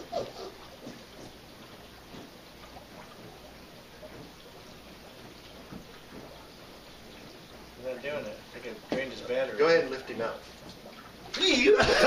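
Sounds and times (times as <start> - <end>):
small water drips: 0.0 - 12.0
water sloshing in a tub: 0.0 - 12.0.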